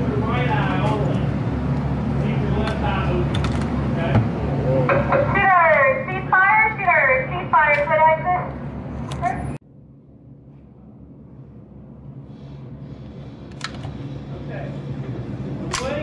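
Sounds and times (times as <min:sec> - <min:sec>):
voices talking: 0:00.0 - 0:08.6
steady low hum: 0:00.0 - 0:16.0.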